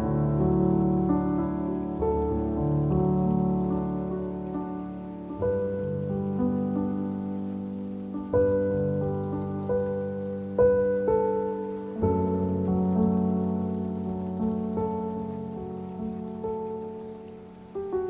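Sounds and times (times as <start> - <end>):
slow solo piano chords: 0.0 - 18.0.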